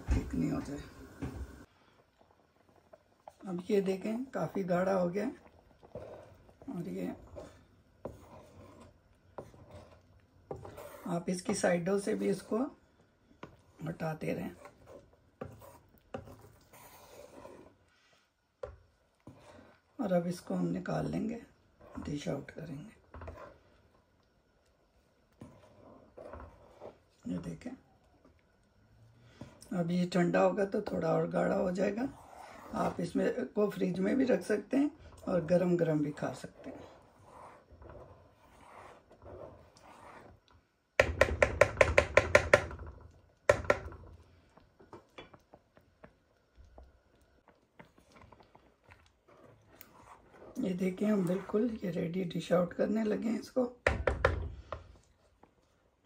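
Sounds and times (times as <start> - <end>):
spatula scraping a pan: 3.6 - 12.8, 13.4 - 24.0, 25.3 - 27.6, 30.9 - 44.0, 47.8 - 53.3
wooden spatula knocking on pan: 41.0 - 44.0, 53.8 - 54.6.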